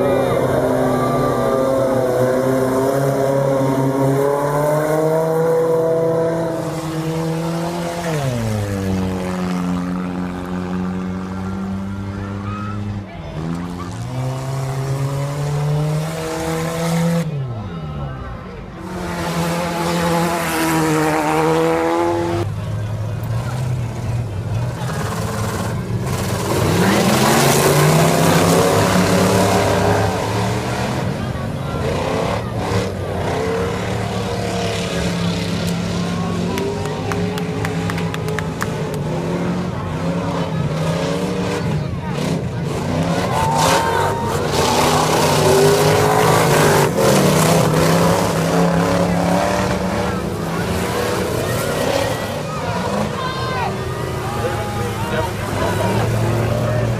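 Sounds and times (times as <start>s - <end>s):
race car engines: 0.0s - 56.9s.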